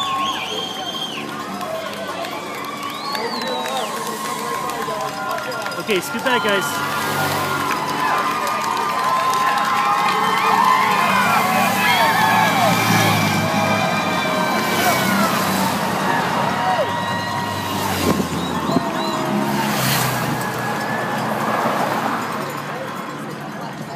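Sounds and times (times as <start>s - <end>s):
crowd shouting and cheering: 0.0s - 23.9s
motorcycles and cars driving by: 0.0s - 23.9s.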